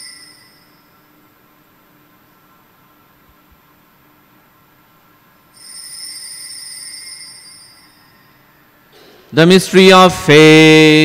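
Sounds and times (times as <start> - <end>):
altar bell ringing: 0.0 - 0.9, 5.5 - 8.3.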